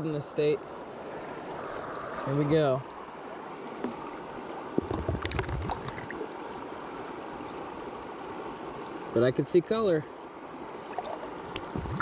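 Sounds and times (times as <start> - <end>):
creek rushing: 0.0 - 12.0.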